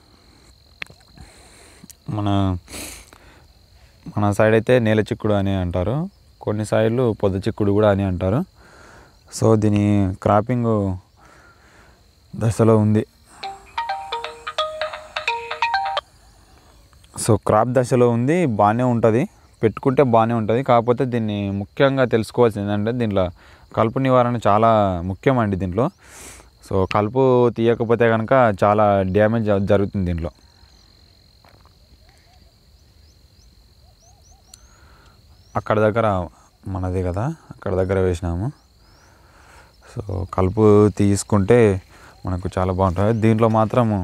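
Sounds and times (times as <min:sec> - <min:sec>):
high-pitched insect trill: 0:00.0 - 0:44.0
rising bird chirps: 0:13.2 - 0:17.0, 0:32.0 - 0:35.7
mobile phone ringtone: 0:13.4 - 0:16.0.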